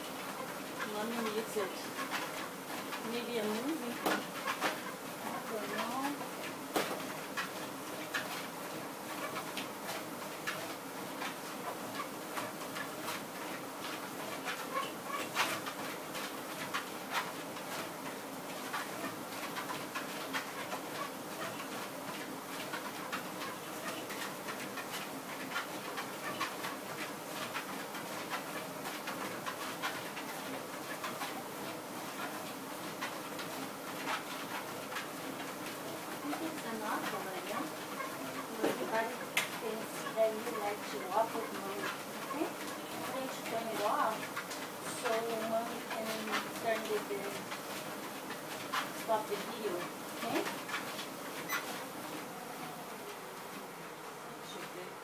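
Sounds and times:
footfalls on treadmill belt: 0.0s - 55.0s
treadmill motor humming: 0.0s - 55.0s.

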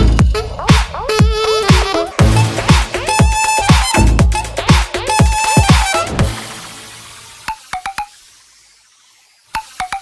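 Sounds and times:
electronic blips: 2.2s - 10.0s
faint hiss: 6.5s - 10.0s.

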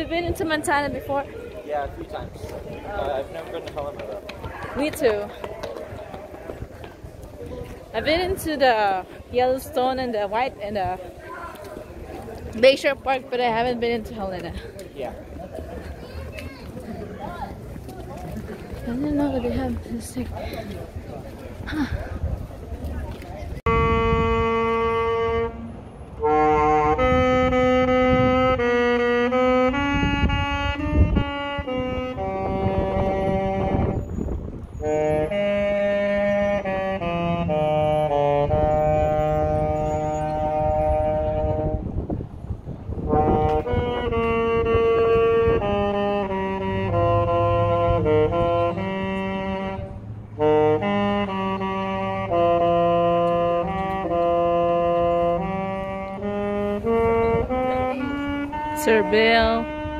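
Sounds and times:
saxophone slow melody: 23.6s - 34.1s, 34.8s - 42.0s, 43.0s - 59.9s.

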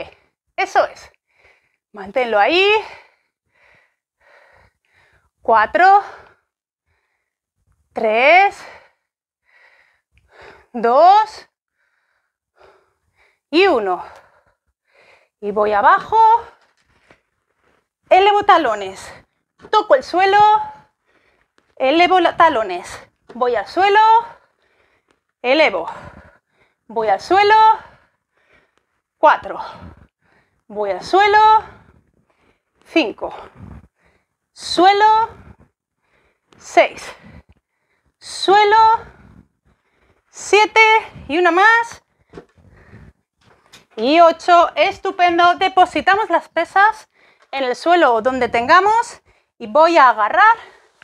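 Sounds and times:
woman speaking: 0.0s - 1.0s, 2.0s - 2.9s, 5.5s - 6.2s, 8.0s - 8.7s, 10.7s - 11.4s, 13.6s - 14.2s, 15.4s - 16.6s, 18.1s - 20.8s, 21.8s - 24.4s, 25.4s - 26.1s, 26.9s - 27.9s, 29.2s - 29.8s, 30.7s - 31.8s, 32.9s - 33.5s, 34.6s - 35.4s, 36.6s - 37.2s, 38.2s - 39.2s, 40.4s - 42.0s, 43.9s - 50.8s.

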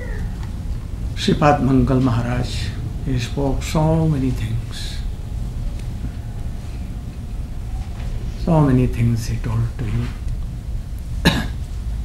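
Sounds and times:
steady low hum: 0.0s - 12.0s
man coughing: 11.2s - 11.7s.

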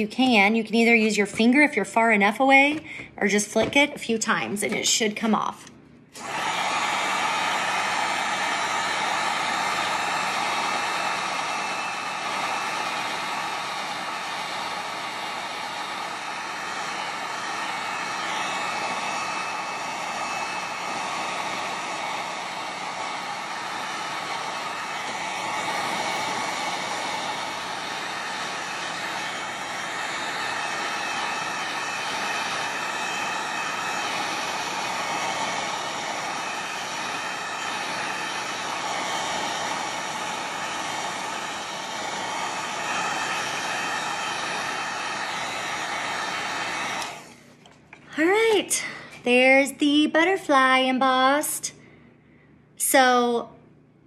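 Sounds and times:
heat gun blowing air: 6.1s - 47.6s.

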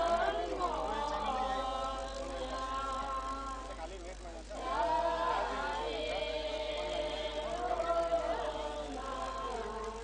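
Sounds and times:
group chanting in unison: 0.0s - 3.7s, 4.6s - 10.0s.

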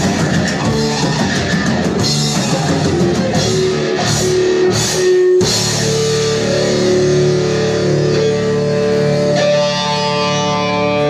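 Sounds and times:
rock band ringing chord: 0.0s - 11.0s.

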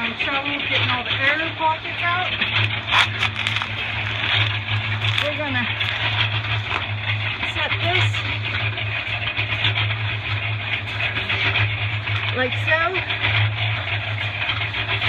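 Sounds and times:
engine running: 0.0s - 15.0s.

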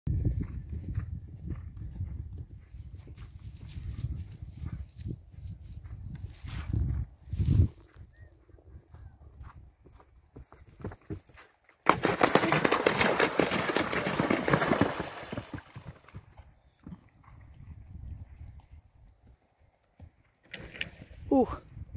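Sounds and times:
horse hoofbeats on turf: 0.1s - 7.7s, 8.8s - 20.4s
horse splashing through water: 11.9s - 16.3s.

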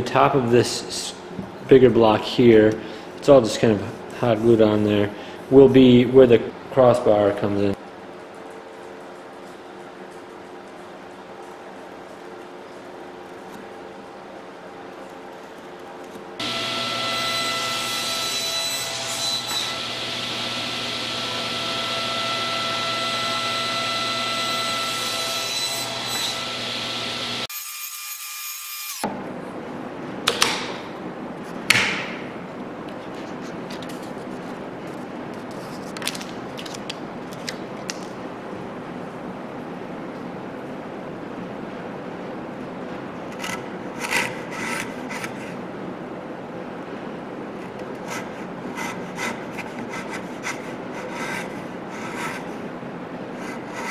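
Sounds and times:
power tool running: 16.4s - 17.6s
chisel scraping wood: 43.4s - 45.5s, 48.0s - 52.5s.

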